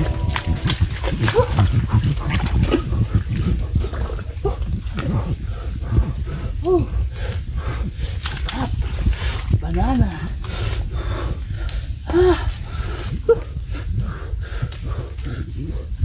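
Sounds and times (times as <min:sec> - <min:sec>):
low rumble: 0:00.0 - 0:16.0
heavy breathing: 0:10.4 - 0:16.0.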